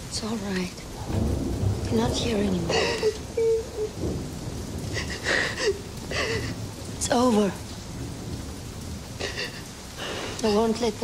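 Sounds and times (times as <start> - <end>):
heavy rain: 0.0 - 11.0
low rumble: 0.8 - 9.4
woman sobbing: 2.6 - 4.2, 4.8 - 6.8, 9.2 - 10.9.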